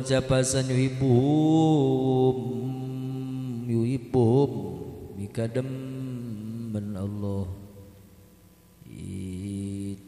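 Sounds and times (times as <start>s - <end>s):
man chanting recitation: 0.0s - 7.9s, 8.8s - 10.0s.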